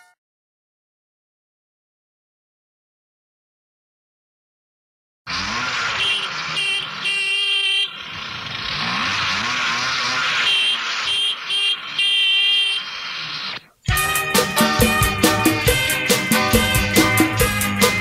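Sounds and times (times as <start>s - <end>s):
rushing traffic noise: 5.3s - 13.9s
horn honks: 5.3s - 18.0s.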